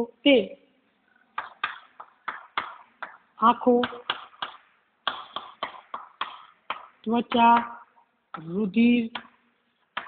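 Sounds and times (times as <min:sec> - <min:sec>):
chalk tapping on chalkboard: 0:01.4 - 0:09.3.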